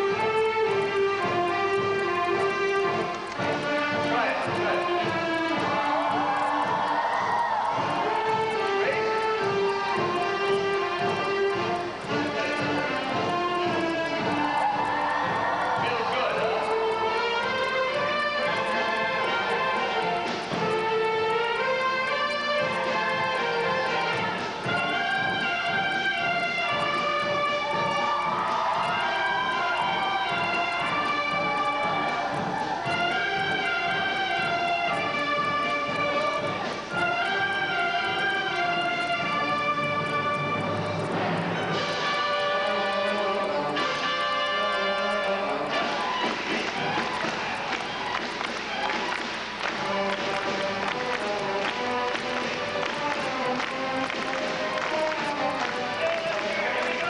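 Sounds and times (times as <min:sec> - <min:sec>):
concert band playing: 0:00.0 - 0:57.0
children shouting: 0:05.6 - 0:08.7, 0:14.2 - 0:17.3, 0:26.9 - 0:33.6.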